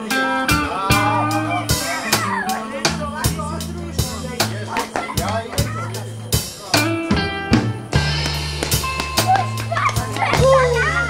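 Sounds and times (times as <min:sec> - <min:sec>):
high voices calling out: 0:00.0 - 0:07.3, 0:08.8 - 0:11.0
bass guitar: 0:00.0 - 0:11.0
drum kit: 0:00.0 - 0:11.0.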